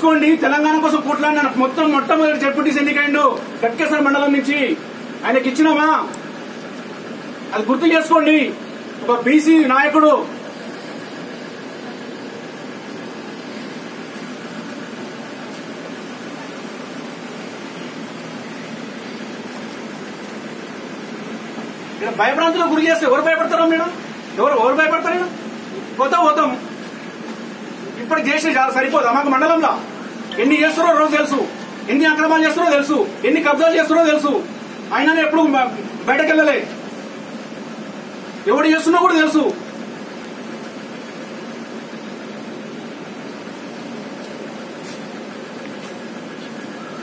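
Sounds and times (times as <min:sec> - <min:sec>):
steady hiss: 0:00.0 - 0:47.0.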